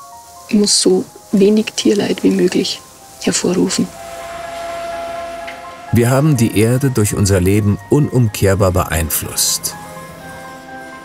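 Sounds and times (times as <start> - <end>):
held film score chord: 0.7 - 11.0.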